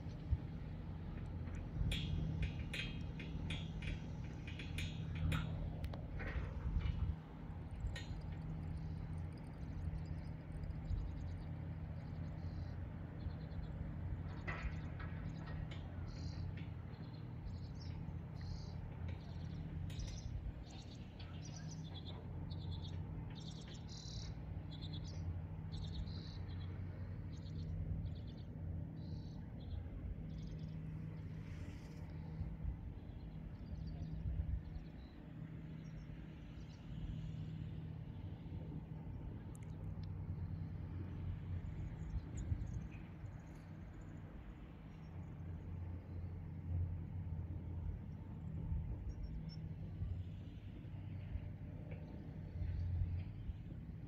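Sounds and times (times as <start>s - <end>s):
steady low hum: 0.0s - 54.0s
small birds chirping: 6.8s - 54.0s.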